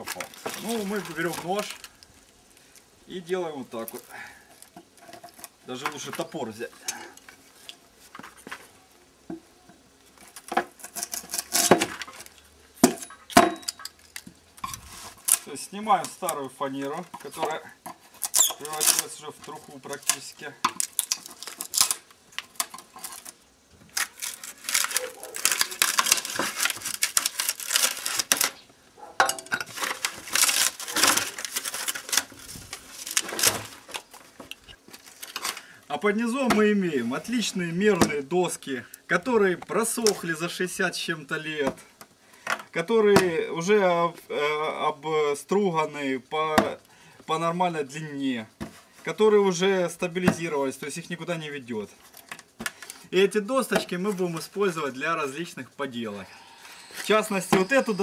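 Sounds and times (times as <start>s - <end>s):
brittle veneer crackling: 0.0s - 8.8s, 10.0s - 42.1s, 48.6s - 58.0s.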